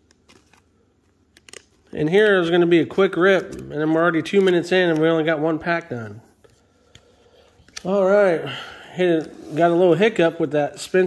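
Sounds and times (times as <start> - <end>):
handling card by hand: 0.0 - 2.5, 3.2 - 8.0.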